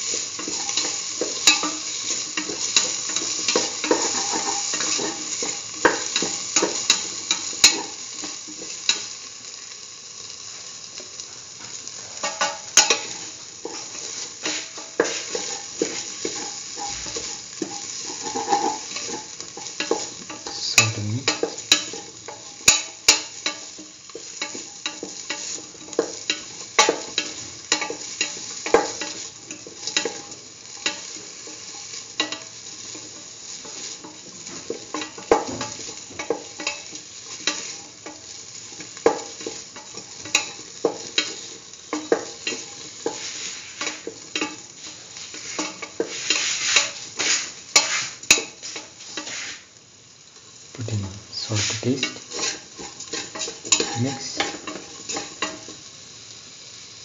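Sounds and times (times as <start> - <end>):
spatula scraping and knocking pan: 0.0 - 9.2, 11.6 - 49.7, 50.9 - 55.8
vegetables sizzling in oil: 0.0 - 57.0.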